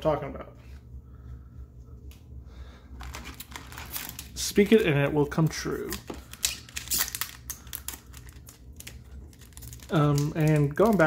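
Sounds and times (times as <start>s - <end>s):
foil wrapper crinkling: 3.0s - 11.0s.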